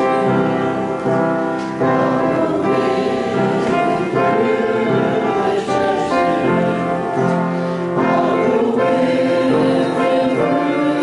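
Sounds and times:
congregation singing a hymn: 0.0 - 11.0
music underneath singing: 0.0 - 11.0.

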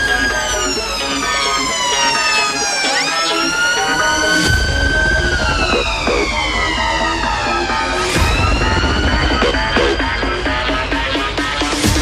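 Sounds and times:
ambulance siren wailing: 0.0 - 12.0
music: 0.0 - 12.0.

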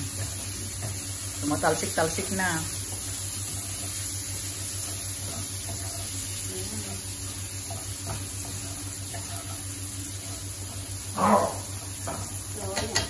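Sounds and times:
meat sizzling in oil: 0.0 - 13.0.

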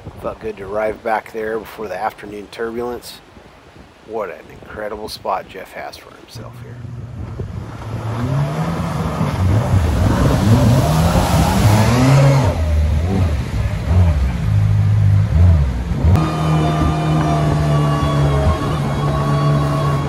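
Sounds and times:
water rushing and spraying: 0.0 - 20.0
jet boat engine revving: 6.8 - 20.0
steady even drone: 8.0 - 20.0.

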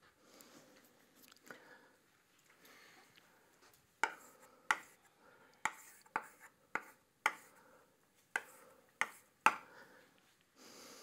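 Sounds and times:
chalk tapping on chalkboard: 4.0 - 5.0, 5.6 - 7.6, 8.3 - 9.6.

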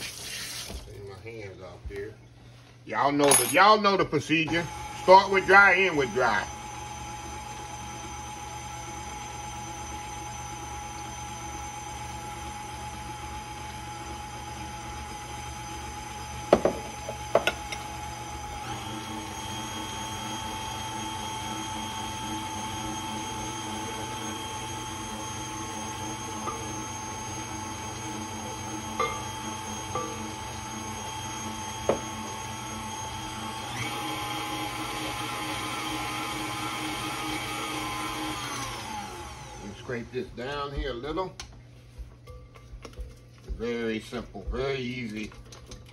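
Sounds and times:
stand mixer motor whine: 4.4 - 40.9.

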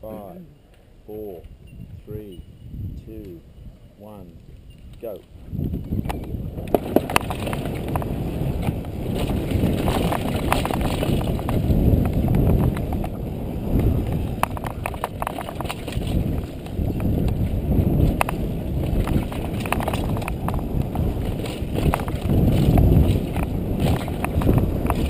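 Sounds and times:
wind rushing over microphone: 1.0 - 25.0
tyres rumbling over dirt: 6.3 - 25.0.

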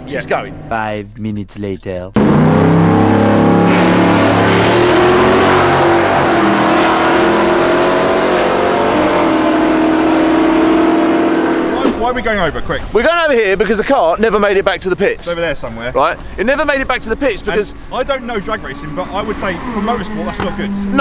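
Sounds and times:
loud car engine at high revs: 2.2 - 12.0.

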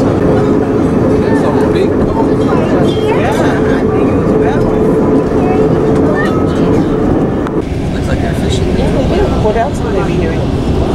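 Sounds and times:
passengers talking: 0.0 - 10.9
vehicle interior rumble: 0.0 - 10.9.

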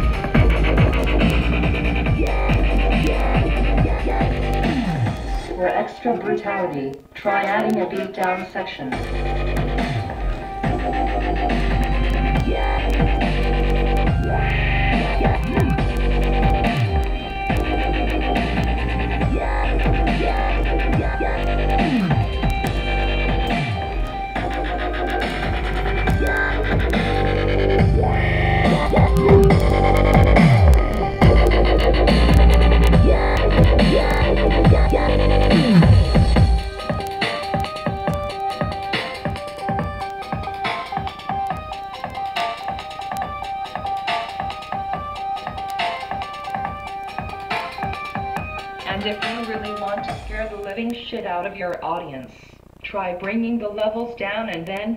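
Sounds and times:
sharp clicks: 0.0 - 5.9, 6.6 - 54.9
dubstep through a subwoofer: 0.0 - 54.9.

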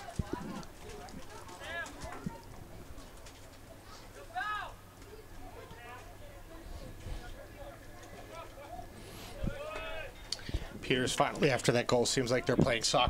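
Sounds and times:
distant shouts of players: 8.2 - 10.2.

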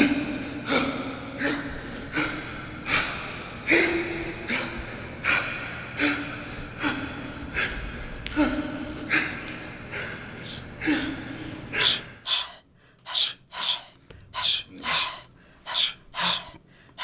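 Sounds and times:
man grunting: 0.0 - 7.3, 14.4 - 16.6
man breathing heavily: 0.0 - 17.0.

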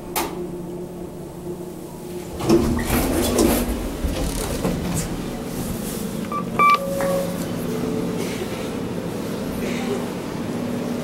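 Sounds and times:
elevator button electronic beeps: 6.3 - 7.4
fainter lower tone: 6.3 - 8.0.

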